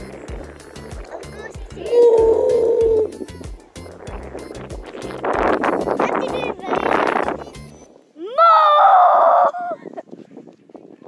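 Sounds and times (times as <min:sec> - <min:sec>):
background music with beat: 0:00.0 - 0:07.8.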